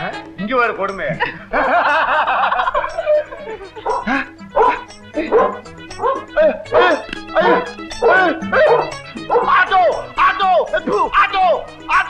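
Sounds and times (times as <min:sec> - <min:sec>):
film music: 0:00.0 - 0:12.0
dog barking: 0:03.8 - 0:09.7.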